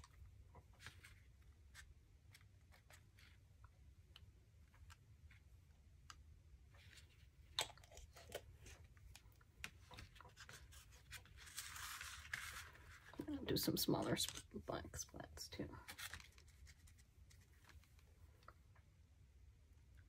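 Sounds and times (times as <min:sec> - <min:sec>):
paper rustle: 0:06.8 - 0:13.3, 0:15.8 - 0:18.1.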